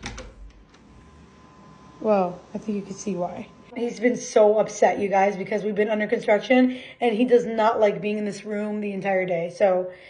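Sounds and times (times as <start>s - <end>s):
door latch clicking: 0.0s - 0.7s
dehumidifier humming: 0.0s - 10.0s.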